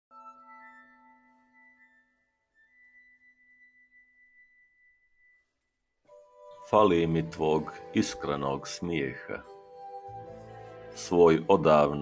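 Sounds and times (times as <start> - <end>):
ringing glass-harp note: 0.1 - 6.7.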